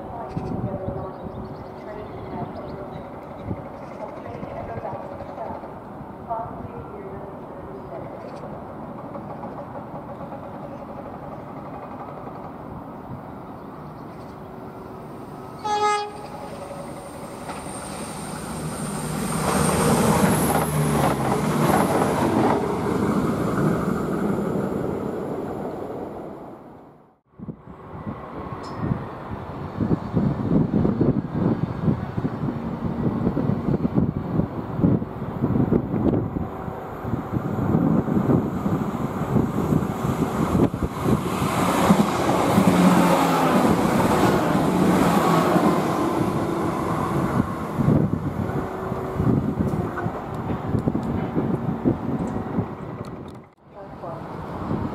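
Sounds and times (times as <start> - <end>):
diesel railcar passing: 0.0 - 54.9
train horn blast: 15.6 - 16.9.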